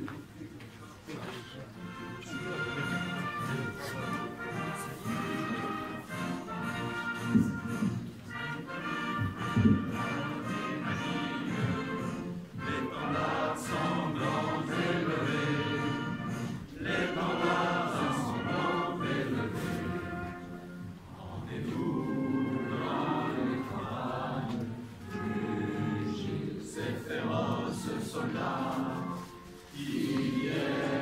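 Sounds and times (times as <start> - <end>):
choir singing anthem with accompaniment: 2.8 - 31.0.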